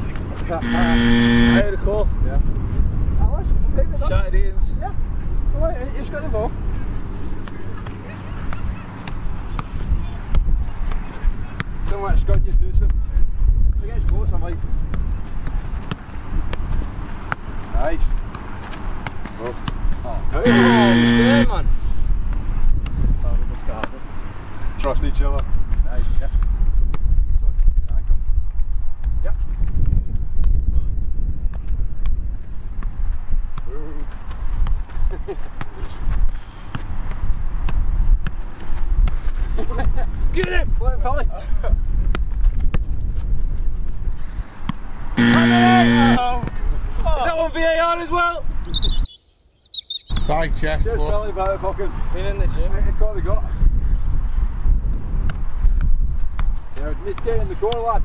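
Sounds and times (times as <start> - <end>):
player shouting: 0.6 - 1.6, 20.4 - 21.6, 45.2 - 46.3
wind buffeting microphone: 25.5 - 33.5, 52.3 - 56.7.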